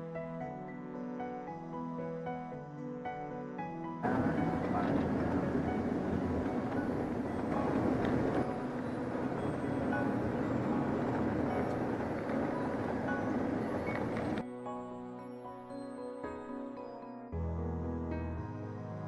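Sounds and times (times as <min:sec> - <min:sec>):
coach engine and road rumble: 0:04.0 - 0:14.4.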